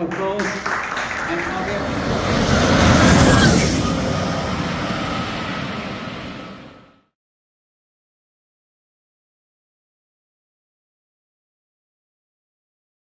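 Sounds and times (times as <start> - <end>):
car passing at speed: 0.2 - 7.1
faint high whine: 0.8 - 7.1.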